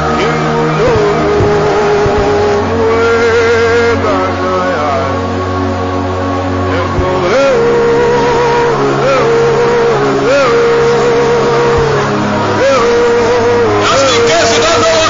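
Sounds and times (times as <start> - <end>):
keyboard sustained chords: 0.0 - 15.0.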